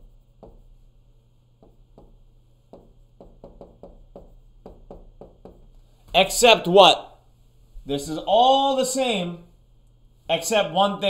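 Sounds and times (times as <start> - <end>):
stylus tapping on glass: 1.6 - 5.7.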